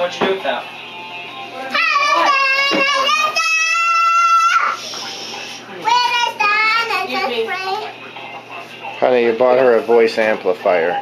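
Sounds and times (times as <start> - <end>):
child singing into toy microphone: 1.7 - 4.8.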